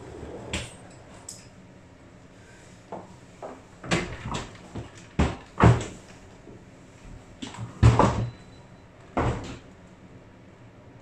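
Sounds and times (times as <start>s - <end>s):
door knocks and clunks: 9.2s - 9.6s.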